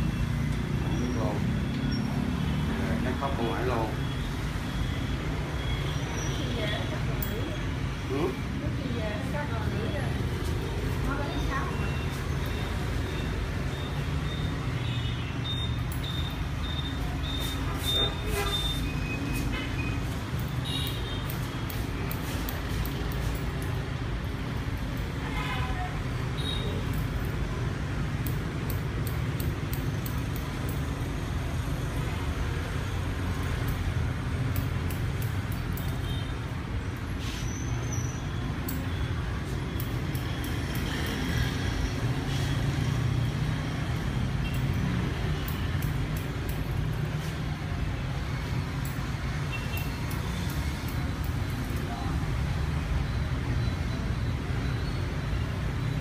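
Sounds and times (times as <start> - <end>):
street traffic rumble: 0.0 - 56.0
scissors snipping hair: 19.4 - 25.2, 26.8 - 31.7, 33.3 - 36.1, 38.6 - 47.9, 48.6 - 51.9.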